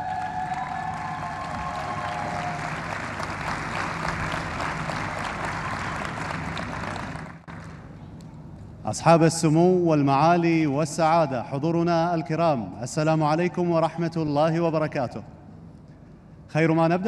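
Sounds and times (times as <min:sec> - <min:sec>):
audience applauding: 0:00.0 - 0:07.6.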